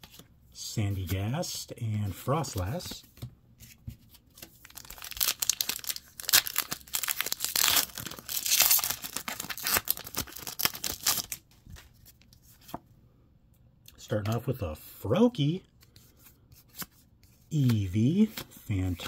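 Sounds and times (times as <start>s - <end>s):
plastic wrapper tearing and crinkling: 4.6s - 11.4s.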